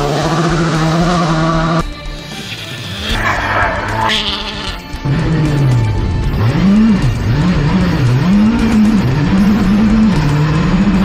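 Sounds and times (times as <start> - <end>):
music: 0.0 - 11.0
rally car engine revving: 0.0 - 11.0.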